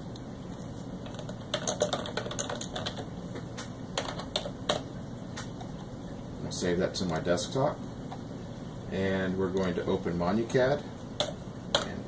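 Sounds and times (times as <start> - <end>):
computer keyboard keys clicking: 1.1 - 5.5.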